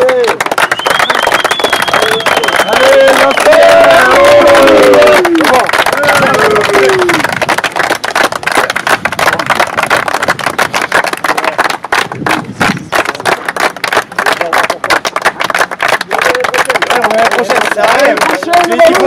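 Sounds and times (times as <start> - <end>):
people clapping: 0.0 - 19.0.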